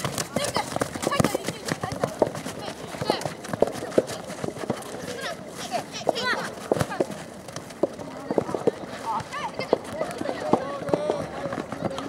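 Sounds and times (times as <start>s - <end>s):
ball kicks: 0.0s - 5.1s, 6.0s - 12.0s
running feet on grass: 0.0s - 12.0s.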